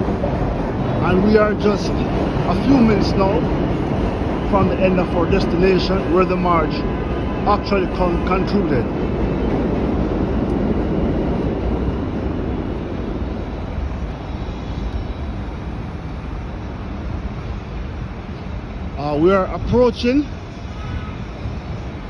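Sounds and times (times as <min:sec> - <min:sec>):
traffic rumble: 0:00.0 - 0:22.0.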